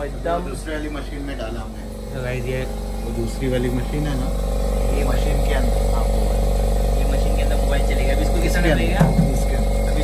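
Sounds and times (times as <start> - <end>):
electric machine humming: 0.0 - 10.0.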